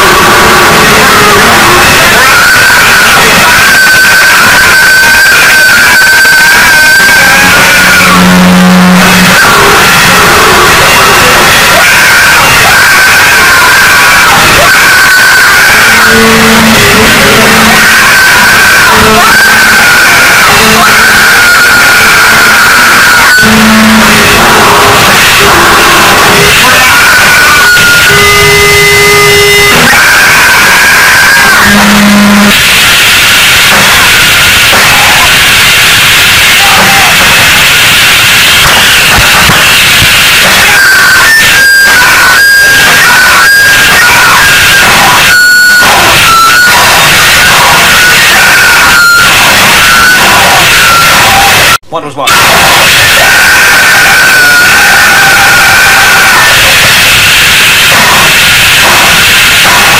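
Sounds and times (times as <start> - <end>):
distorted noise music: 0.0 - 59.9.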